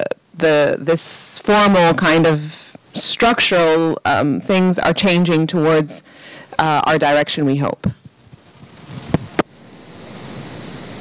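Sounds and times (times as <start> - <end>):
microphone handling rustle: 7.8 - 9.5
microphone knocks: 7.8 - 9.5.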